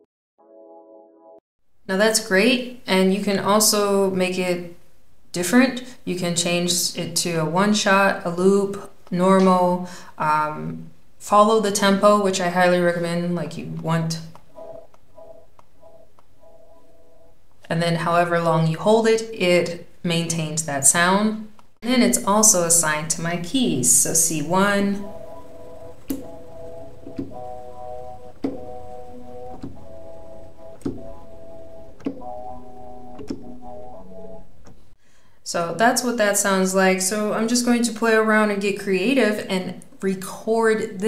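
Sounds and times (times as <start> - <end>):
short keyboard notes: 13.5 - 17.4, 22.2 - 34.8
sampled chords with sharp hits: 14.3 - 17.6, 22.2 - 35.0
soft pad clicks: 25.0 - 34.8.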